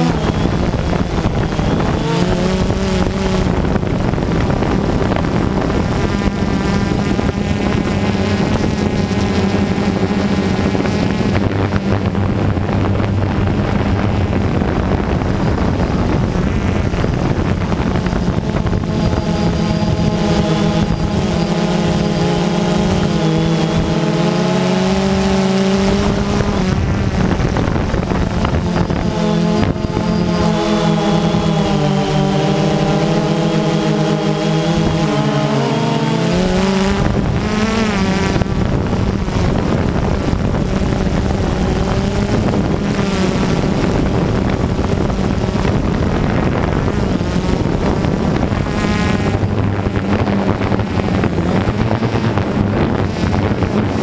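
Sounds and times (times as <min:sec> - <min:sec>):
drone propellers whirring: 0:00.0 - 0:54.0.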